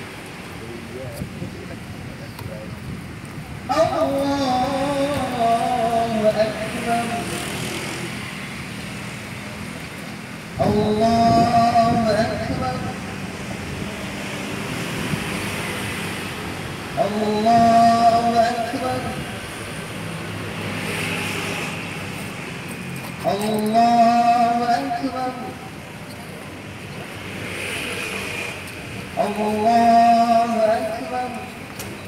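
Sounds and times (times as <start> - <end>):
passing vehicle: 3.4 - 32.0.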